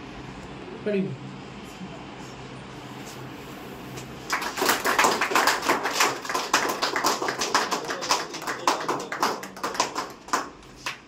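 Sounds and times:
people clapping: 4.2s - 11.0s.

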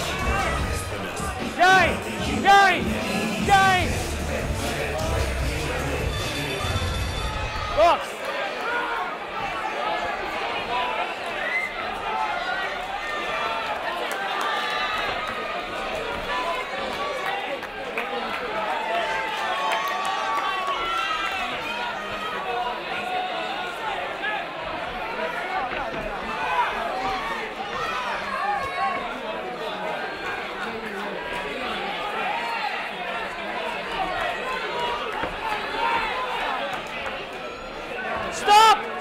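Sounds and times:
crowd shouting: 0.0s - 39.0s.

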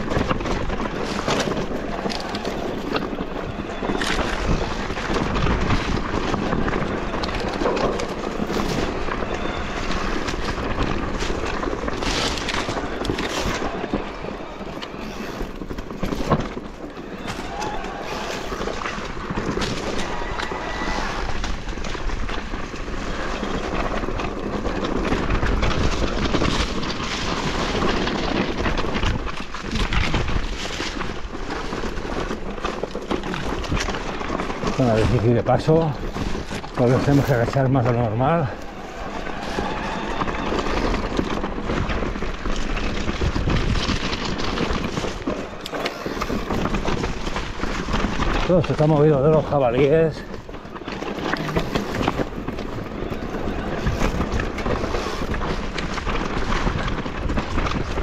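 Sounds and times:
bike rattling: 0.0s - 58.0s
tyres crunching over stones: 0.0s - 58.0s.

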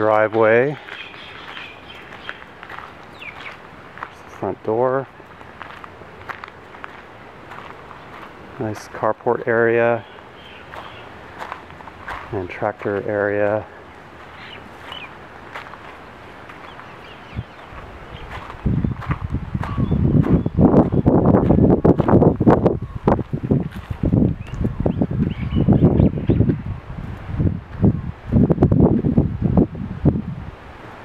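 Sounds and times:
wind buffeting microphone: 10.1s - 13.2s, 14.6s - 31.0s.

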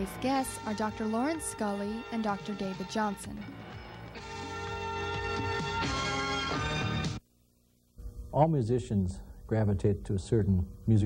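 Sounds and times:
theme music with held chords: 0.0s - 7.2s.

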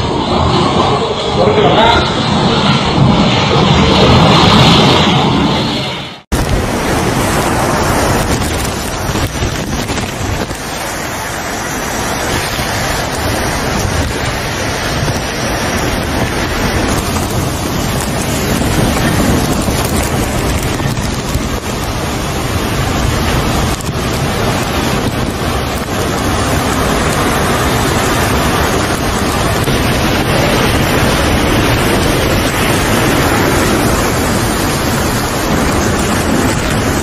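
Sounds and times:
heavy rain: 0.0s - 37.0s
strong wind: 0.0s - 37.0s
wind buffeting microphone: 0.0s - 37.0s.

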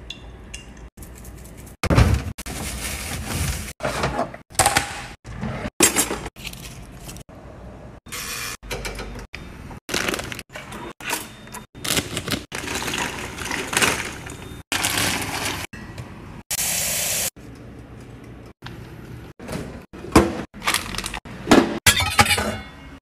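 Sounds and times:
kitchen items clattering: 1.0s - 7.2s, 9.9s - 15.7s, 19.4s - 23.0s.

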